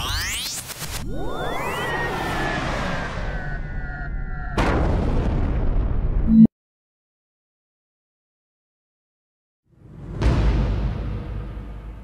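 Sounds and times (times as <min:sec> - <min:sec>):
deep rumbling boom: 0:04.5 - 0:06.3.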